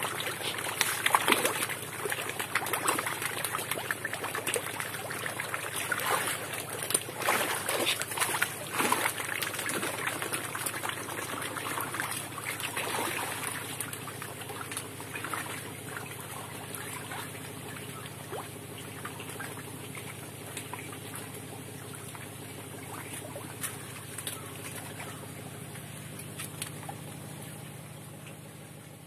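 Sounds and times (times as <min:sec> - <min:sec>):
water splashing and trickling: 0:00.0 - 0:29.0
low hum: 0:00.1 - 0:29.0.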